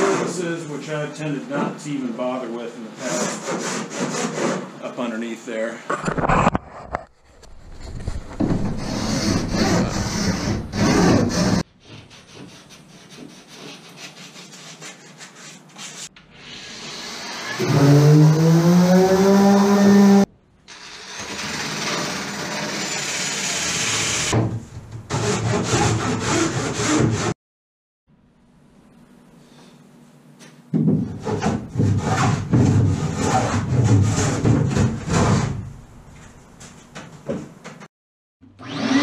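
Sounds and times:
file scraping epoxy: 0:08.7 - 0:16.1.

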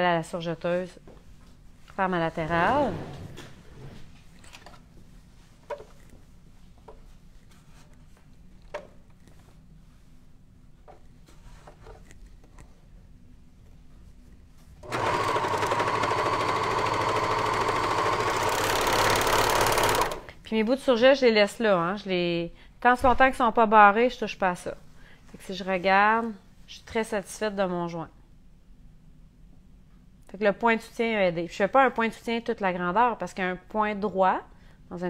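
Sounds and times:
serger sewing machine running: 0:14.8 - 0:20.3.

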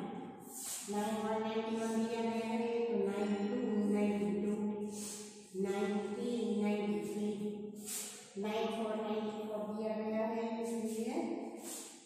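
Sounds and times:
woman chanting in sing-song: 0:00.0 - 0:11.8.

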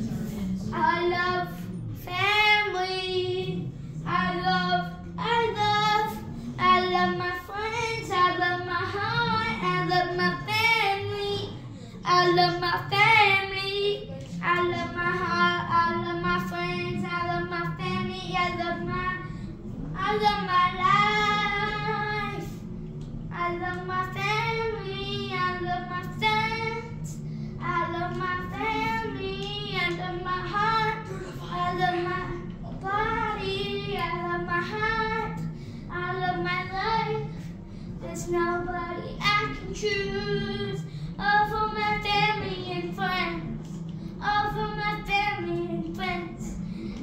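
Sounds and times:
boy singing wordless tune: 0:00.0 - 0:47.0.

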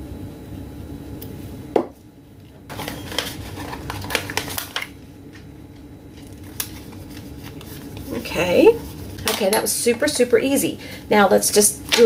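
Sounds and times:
paper rustling and crackling: 0:02.7 - 0:05.0, 0:06.1 - 0:09.5.

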